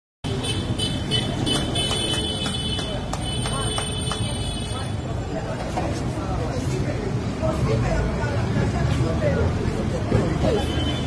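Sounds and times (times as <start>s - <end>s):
road traffic: 0.2s - 11.0s.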